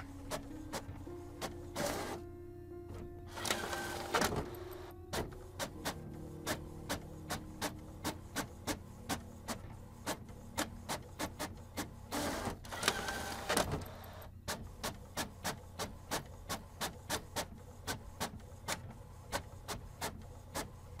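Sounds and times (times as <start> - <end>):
printer rushing whir: 0.0 - 19.6
printer clicking: 0.0 - 21.0
printer hum: 0.0 - 21.0.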